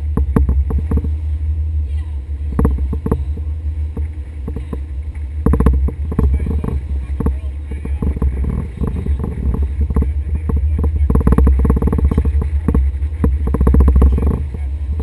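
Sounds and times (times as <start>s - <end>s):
boat engine rumble: 0.0s - 15.0s
waves slapping hull: 0.0s - 15.0s.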